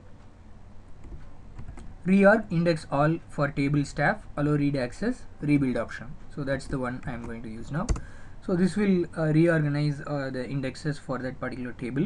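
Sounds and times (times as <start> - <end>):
steady low hum: 0.0 - 12.0
computer keyboard key presses: 6.7 - 8.1.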